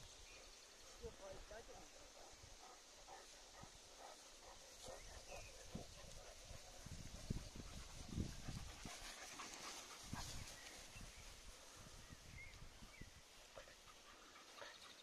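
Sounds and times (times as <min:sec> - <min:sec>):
faint rustling in grass: 0:00.0 - 0:15.0.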